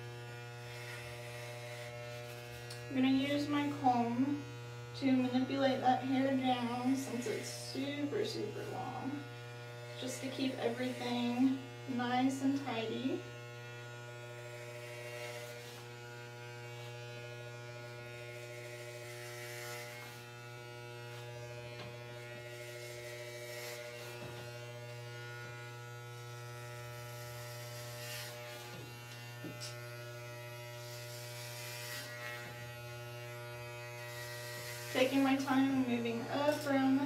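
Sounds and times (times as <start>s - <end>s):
electric hair clippers buzzing: 0.0s - 37.0s.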